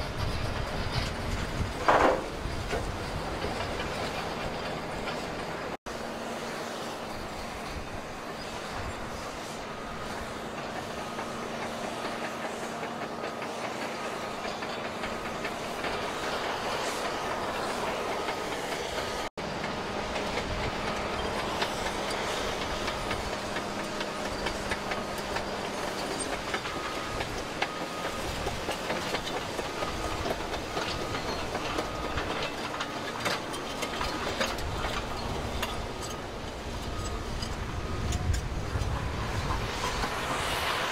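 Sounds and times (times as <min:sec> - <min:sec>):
excavator humming: 0:00.0 - 0:40.9.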